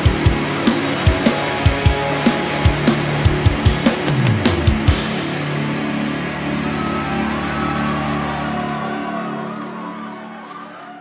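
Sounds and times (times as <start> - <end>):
drum hits: 0.0 - 5.3
distorted electric guitar chord ringing: 0.0 - 8.4.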